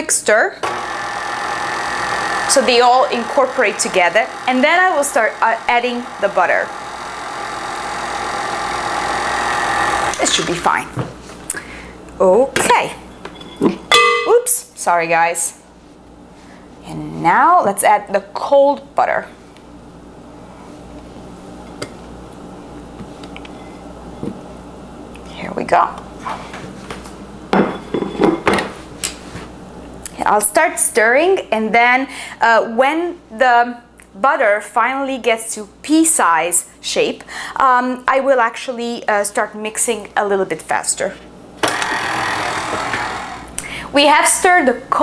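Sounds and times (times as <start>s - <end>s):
stand mixer motor hum: 0.6s - 10.2s, 41.6s - 43.5s
low room hum: 10.0s - 45.0s.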